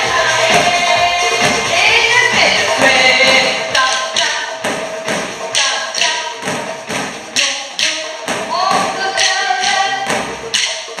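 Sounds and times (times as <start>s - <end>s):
background music: 0.0s - 11.0s
drumsticks hitting exercise balls: 0.4s - 11.0s.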